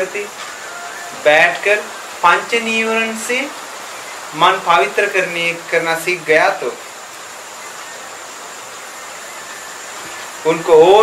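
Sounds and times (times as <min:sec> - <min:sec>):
background hiss: 0:00.0 - 0:11.0
faint high whine: 0:00.0 - 0:11.0.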